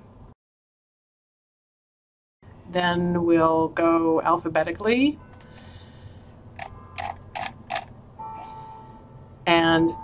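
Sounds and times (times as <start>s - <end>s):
faint steady hum: 2.4s - 10.0s.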